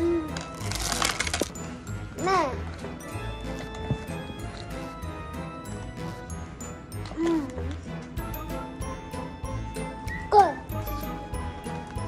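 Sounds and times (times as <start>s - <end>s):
background music: 0.0s - 12.0s
plastic packaging crinkling: 0.2s - 1.8s.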